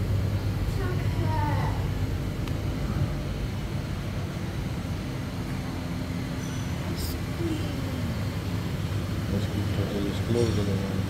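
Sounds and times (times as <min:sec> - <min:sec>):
low machine rumble: 0:00.0 - 0:11.0.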